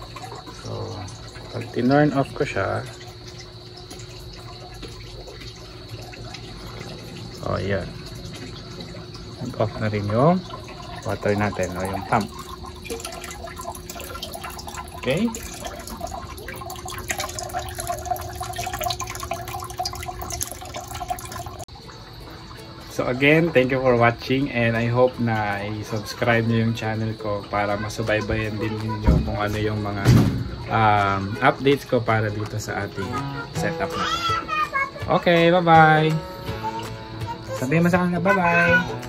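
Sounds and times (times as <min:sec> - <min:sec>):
irrigation water running: 0:00.0 - 0:39.0.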